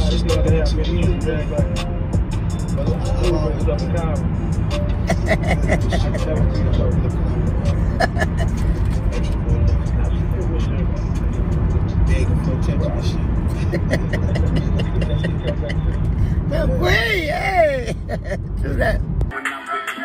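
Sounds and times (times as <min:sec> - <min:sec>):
car road and engine rumble: 0:00.0 - 0:19.3
voices: 0:05.0 - 0:20.0.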